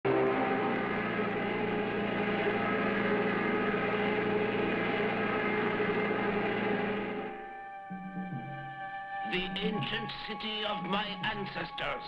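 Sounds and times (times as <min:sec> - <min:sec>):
cartoon car engine drone: 0:00.0 - 0:12.0.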